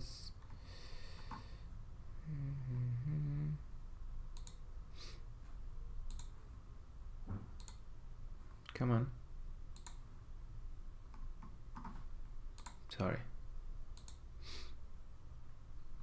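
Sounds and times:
computer mouse clicking: 4.3s - 4.6s, 6.0s - 6.4s, 7.6s - 7.9s, 9.7s - 10.0s, 11.1s - 12.9s, 13.9s - 14.3s.

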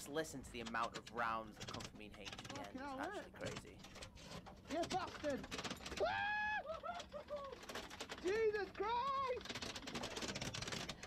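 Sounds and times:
person crying out: 5.9s - 7.7s
person laughing: 6.4s - 7.6s.

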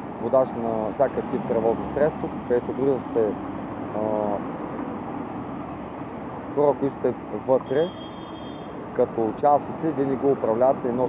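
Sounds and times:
steady rush of traffic: 0.0s - 11.0s.

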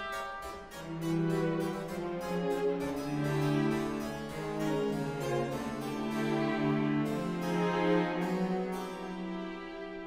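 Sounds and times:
harpsichord plucking notes: 0.0s - 10.0s.

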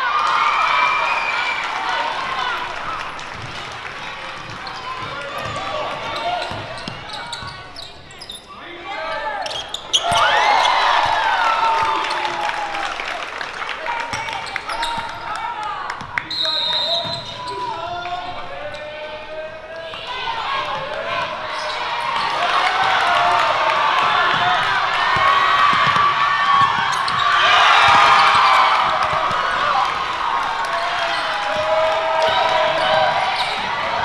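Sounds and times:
players and spectators shouting: 0.0s - 34.0s
basketball bouncing on court: 3.0s - 8.3s, 16.9s - 17.4s, 24.0s - 29.7s.

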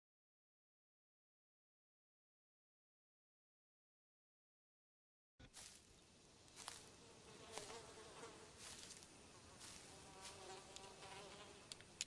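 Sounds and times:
quiet outdoor ambience: 5.4s - 12.0s
flies buzzing: 6.4s - 12.0s
soft clicks: 11.7s - 12.0s.

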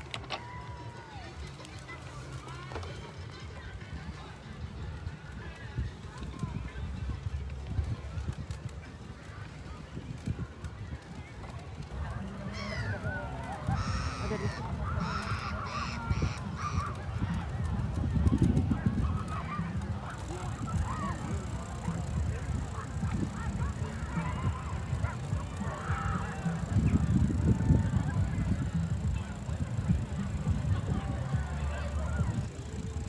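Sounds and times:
distant voices: 0.0s - 33.0s
faint music: 0.0s - 33.0s
birds calling harshly: 13.7s - 16.9s.

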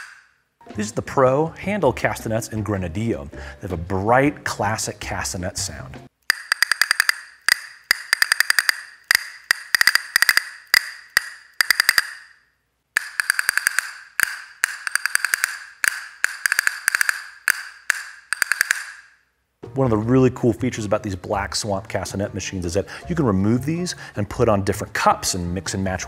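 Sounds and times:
castanets clicking: 0.0s - 0.3s, 6.2s - 12.4s, 13.0s - 19.2s.

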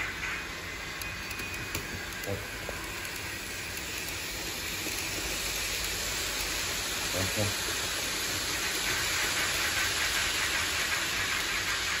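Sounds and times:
model train wheels rattling on rails: 0.0s - 12.0s.

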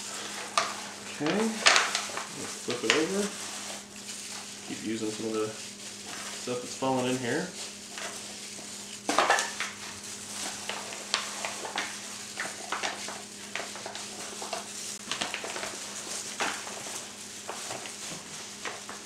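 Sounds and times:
aluminum foil pan crinkling: 0.0s - 19.0s
hands rubbing meat: 0.0s - 19.0s.

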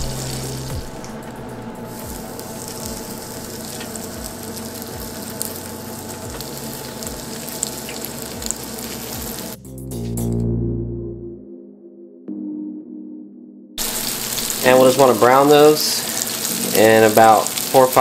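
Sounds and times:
patties sizzling in frying pan: 0.0s - 1.2s, 1.8s - 9.6s, 13.8s - 18.0s
loud low hum: 0.0s - 14.7s
background music with steady beat: 0.0s - 14.8s.

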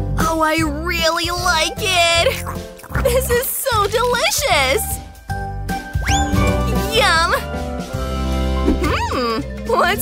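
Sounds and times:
rising whistle sound effect: 6.0s - 6.6s.

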